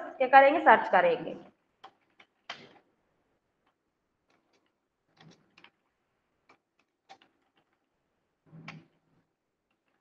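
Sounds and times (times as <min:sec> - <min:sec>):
computer keyboard clicks: 0:01.8 - 0:02.8, 0:03.6 - 0:07.9.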